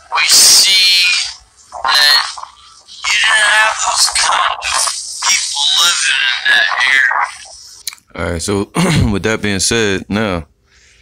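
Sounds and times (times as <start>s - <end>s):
croaky voice sounds: 0.0s - 7.6s.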